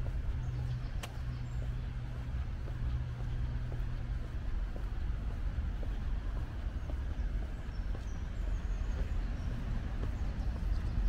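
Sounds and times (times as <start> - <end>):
low city rumble: 0.0 - 11.0.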